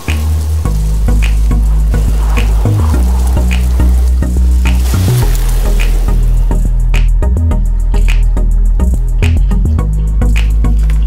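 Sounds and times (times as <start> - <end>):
background music with deep bass: 0.0 - 11.0
crackly hiss: 0.0 - 11.0.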